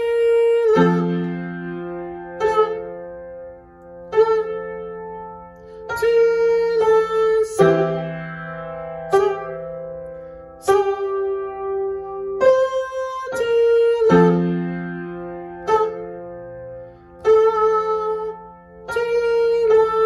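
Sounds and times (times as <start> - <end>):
upright piano notes and chords: 0.0 - 20.0.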